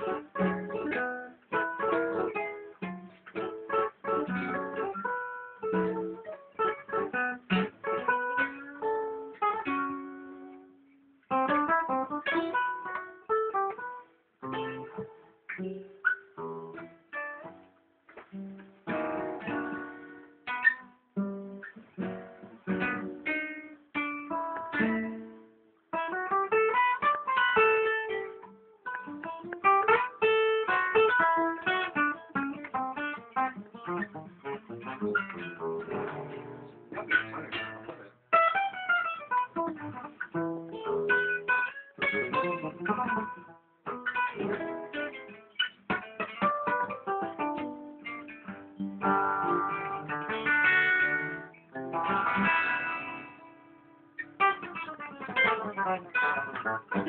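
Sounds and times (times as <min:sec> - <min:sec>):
acoustic guitar playing: 0:00.0 - 0:57.0.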